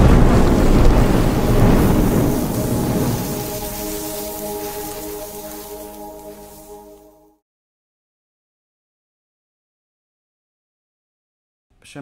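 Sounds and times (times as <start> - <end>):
deep rumbling whoosh: 0.0 - 6.0
sustained music tones: 0.0 - 7.4.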